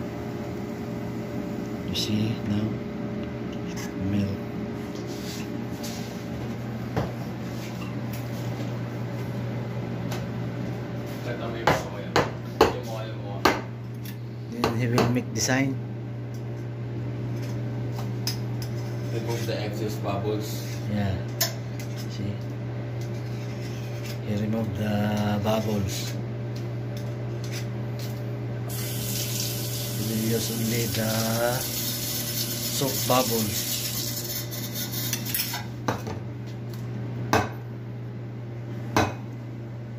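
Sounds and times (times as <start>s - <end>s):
steady low hum: 0.0s - 39.9s
water running into a metal sink: 28.7s - 34.0s.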